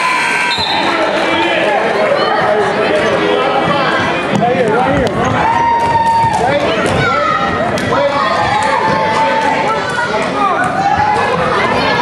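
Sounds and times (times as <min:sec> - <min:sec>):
children's voices: 0:06.5 - 0:12.0.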